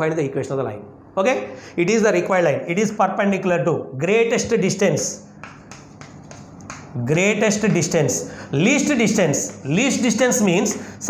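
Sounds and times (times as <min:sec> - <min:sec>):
chalk tapping on blackboard: 0:05.3 - 0:08.0.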